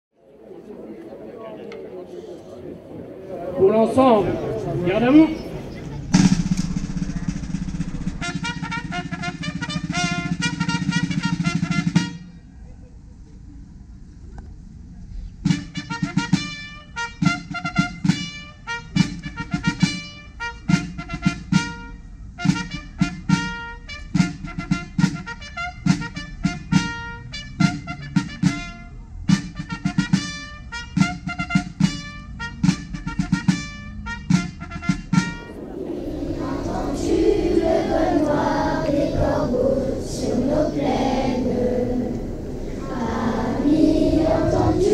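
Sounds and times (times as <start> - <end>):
brass ceremonial music: 3.2 - 12.4, 15.4 - 44.9.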